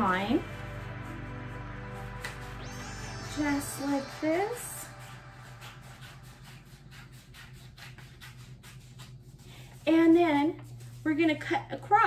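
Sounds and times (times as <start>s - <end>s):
scissors cutting paper: 5.5s - 10.2s.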